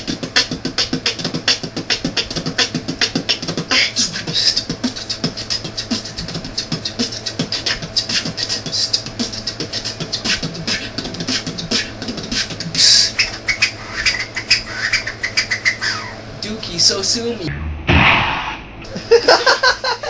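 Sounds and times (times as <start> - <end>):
person beatboxing: 0.0 - 15.5.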